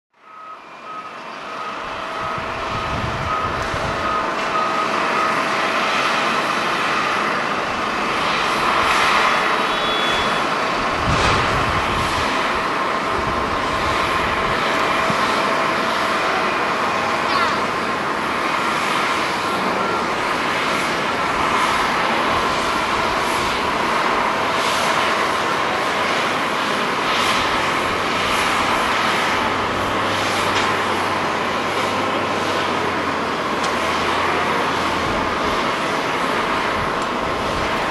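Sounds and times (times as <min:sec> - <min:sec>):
faint high whine: 0:00.2 - 0:32.6
jet engine rush: 0:00.7 - 0:37.9.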